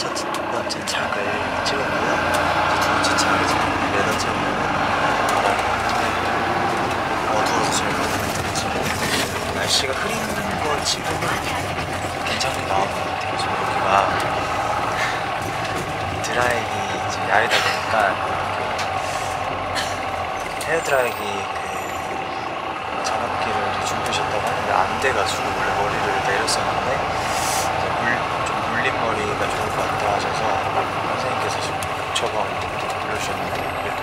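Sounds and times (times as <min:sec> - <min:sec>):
bus engine hum: 0:00.0 - 0:34.0
road noise: 0:00.0 - 0:34.0.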